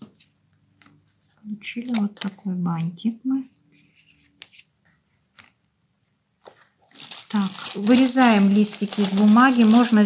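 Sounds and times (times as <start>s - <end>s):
person speaking: 7.0s - 10.0s.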